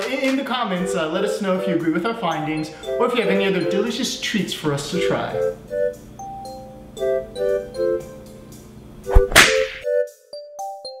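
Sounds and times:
keyboard notes: 0.8 - 8.6
whip-crack sound effect: 9.1 - 9.9.

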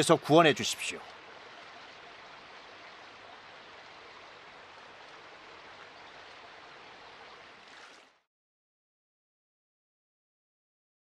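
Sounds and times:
stream running over rocks: 0.0 - 8.3.

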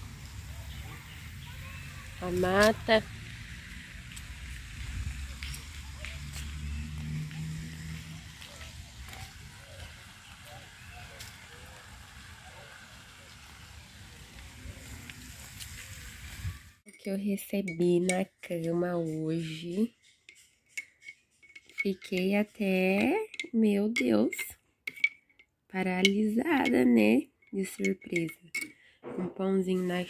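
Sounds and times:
faint distant voices: 0.0 - 3.6, 4.6 - 16.5
wind on microphone: 4.5 - 5.7, 14.2 - 16.8.

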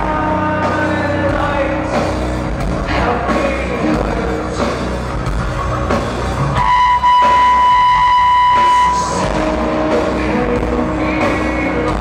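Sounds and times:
live rock band: 0.0 - 12.0
high held note: 6.6 - 9.5.

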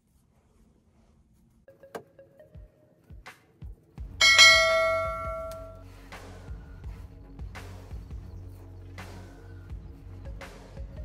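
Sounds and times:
soft background music: 0.9 - 11.0
loud bell-like chime: 4.2 - 5.8.

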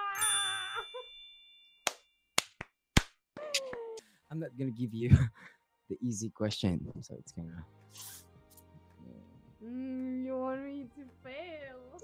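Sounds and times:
bell-like ding: 0.1 - 1.8.

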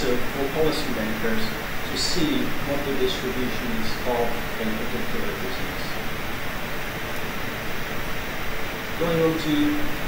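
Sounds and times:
steady room hiss: 0.0 - 10.0.

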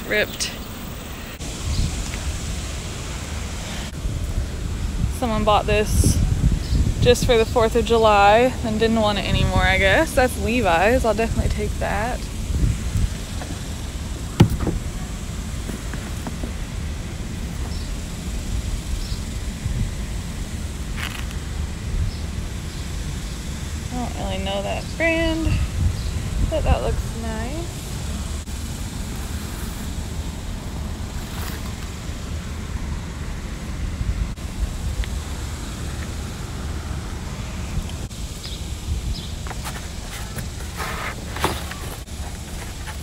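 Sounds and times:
wind on microphone: 1.3 - 13.5, 17.6 - 20.3, 24.2 - 28.5
sharp knock: 14.4 - 14.8.

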